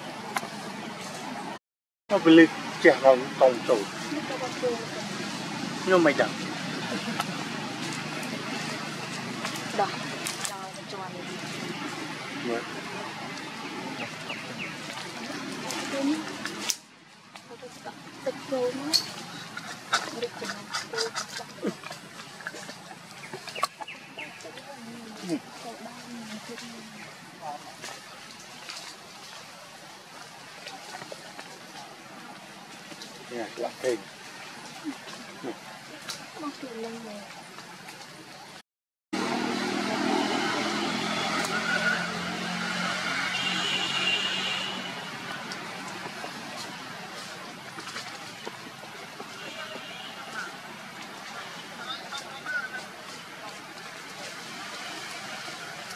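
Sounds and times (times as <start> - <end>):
animal calls: 18.9 - 25.4.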